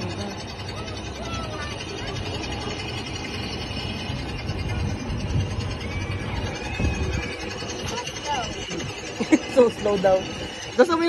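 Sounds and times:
high-pitched squeals: 0.0 - 11.0
ride car rumbling on track: 0.0 - 11.0.

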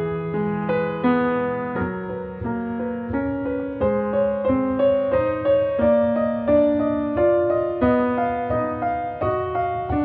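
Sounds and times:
slow classical piano: 0.0 - 10.0.

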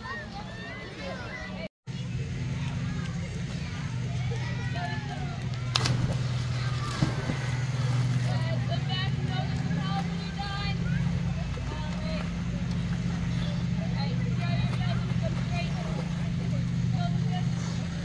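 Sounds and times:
children calling and shouting: 0.0 - 18.0
low mechanical hum: 0.0 - 18.0.

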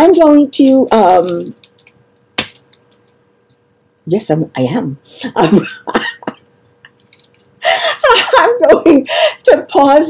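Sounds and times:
woman laughing: 5.2 - 6.5, 7.6 - 9.4.

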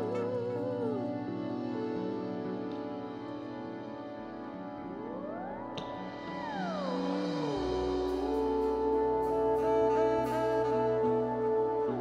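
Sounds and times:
gliding lead tone: 0.0 - 12.0
deep bass note: 7.6 - 12.0.

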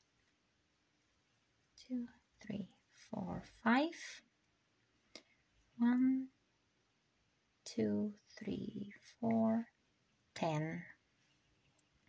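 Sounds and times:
woman whispering: 1.8 - 4.2, 7.7 - 9.7.

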